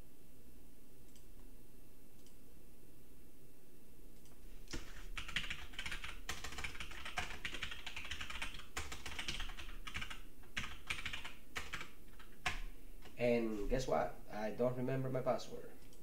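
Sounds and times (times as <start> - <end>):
typing on a computer keyboard: 4.7 - 13.2.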